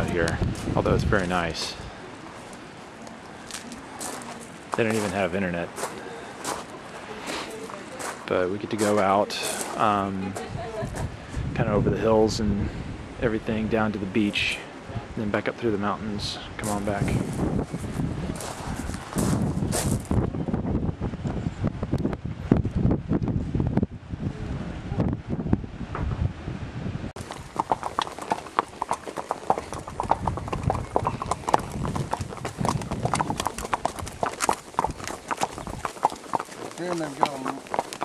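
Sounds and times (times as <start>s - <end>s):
horse hooves clip-clopping: 0.0s - 11.0s, 27.2s - 38.0s
dense low rumble: 29.6s - 36.7s.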